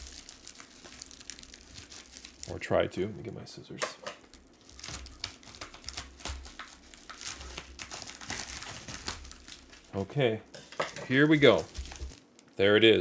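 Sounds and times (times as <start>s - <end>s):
plastic mailer crinkling: 0.0s - 2.7s, 4.4s - 10.0s, 10.6s - 12.5s.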